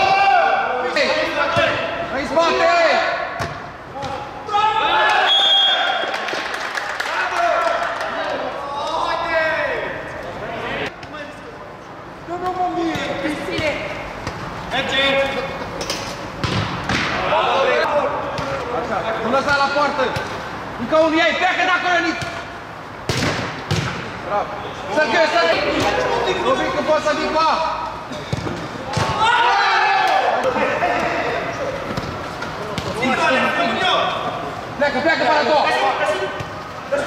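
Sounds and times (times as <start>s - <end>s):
players shouting: 0.0s - 10.9s, 16.9s - 18.8s, 24.3s - 37.0s
man shouting: 4.4s - 5.9s, 29.1s - 30.9s
ball being kicked: 23.1s - 24.0s.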